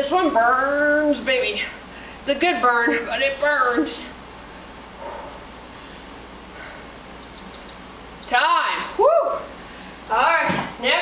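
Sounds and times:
low room hum: 0.0 - 11.0
interval timer high beeps: 7.2 - 8.5.

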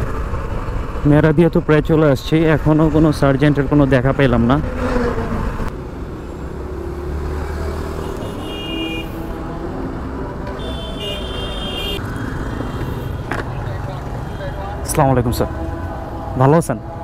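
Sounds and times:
street traffic engine rumble: 0.0 - 17.0
high-pitched vehicle horn: 8.0 - 9.3, 10.5 - 12.0.

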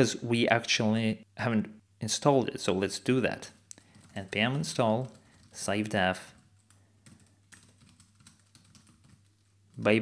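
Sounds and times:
keystrokes on computer keyboard: 3.7 - 9.9.

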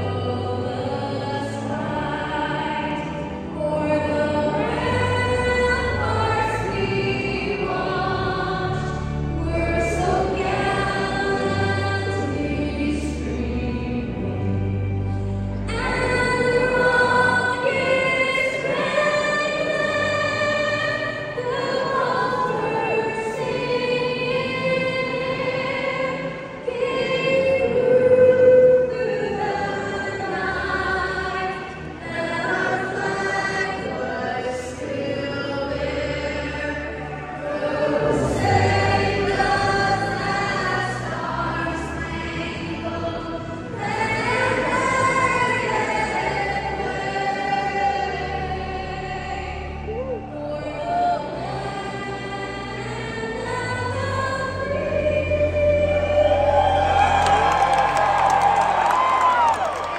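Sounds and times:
woman singing over loudspeakers: 0.0 - 14.7, 15.6 - 59.9.

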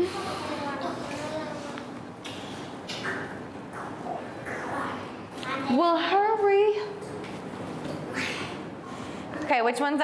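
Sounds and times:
soft classroom hiss: 0.0 - 10.0.

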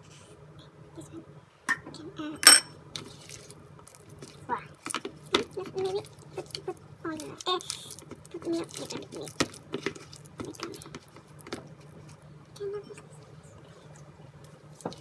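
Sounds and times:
ringing clink on bowl: 2.4 - 2.7
spatula stirring batter in bowl: 2.9 - 12.3.

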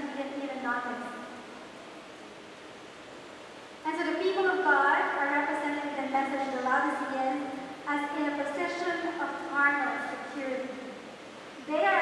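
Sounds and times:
woman speaking: 0.0 - 1.3, 3.9 - 10.8, 11.6 - 12.0
room tone hiss: 0.0 - 12.0.

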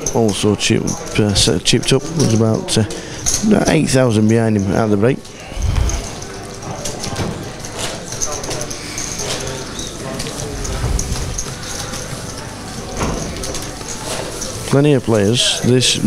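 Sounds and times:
murmur of voices: 0.0 - 16.0.

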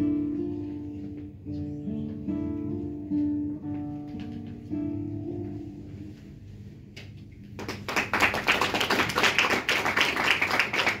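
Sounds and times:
audience applause: 7.6 - 11.0.

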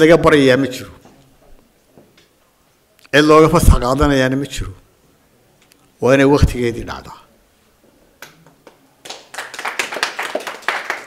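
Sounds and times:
audience hand clapping: 8.2 - 11.0.

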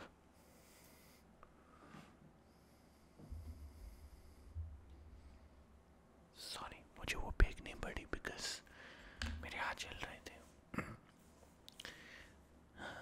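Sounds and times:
man whispering: 6.3 - 10.6.

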